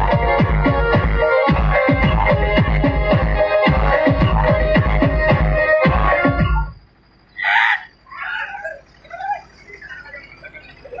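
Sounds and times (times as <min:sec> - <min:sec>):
people yelling and shrieking: 0:07.4 - 0:11.0.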